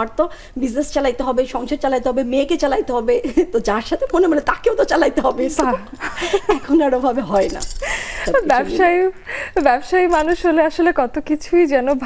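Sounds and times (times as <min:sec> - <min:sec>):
woman talking: 0:00.0 - 0:12.0
woman laughing: 0:05.7 - 0:06.9, 0:07.9 - 0:09.2
light metallic jingle: 0:06.7 - 0:08.8, 0:10.0 - 0:10.8.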